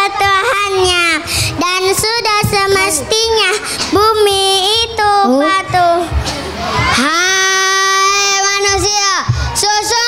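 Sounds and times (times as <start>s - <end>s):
child singing through loudspeakers: 0.0s - 10.0s.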